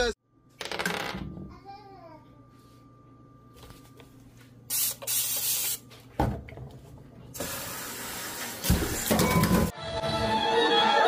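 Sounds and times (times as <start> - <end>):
water spraying into metal sink: 7.4 - 9.1.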